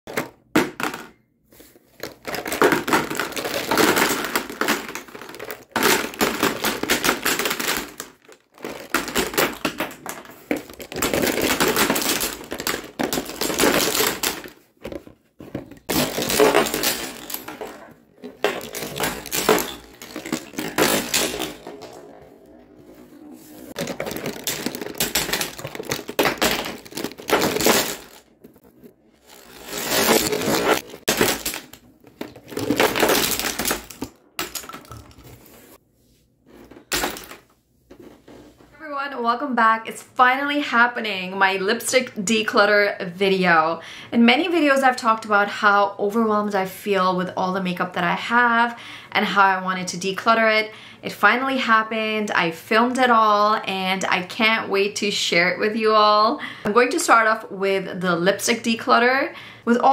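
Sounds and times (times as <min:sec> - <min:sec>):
plastic tubes clattering into tub: 0:00.1 - 0:22.1, 0:23.7 - 0:35.5, 0:36.7 - 0:37.5.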